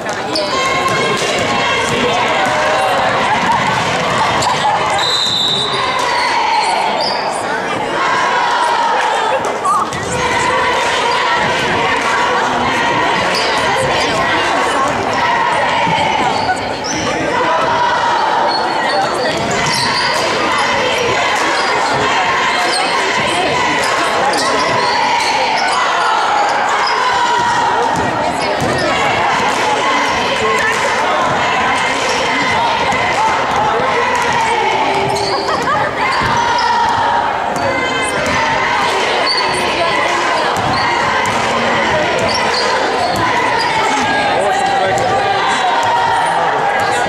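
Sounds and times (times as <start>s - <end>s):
chatter of spectators: 0.0s - 47.0s.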